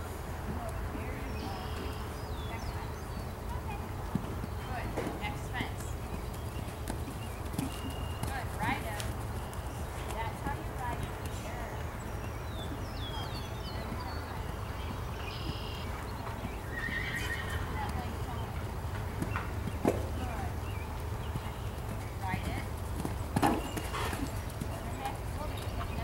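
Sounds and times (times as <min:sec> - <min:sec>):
horse hooves on dirt: 0:00.0 - 0:26.0.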